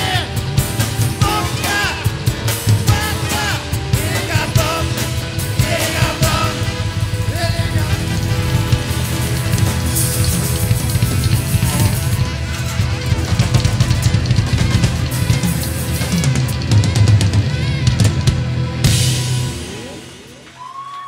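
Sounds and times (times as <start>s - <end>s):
quick drum strokes: 0.0s - 20.9s
rock band playing: 0.0s - 21.0s.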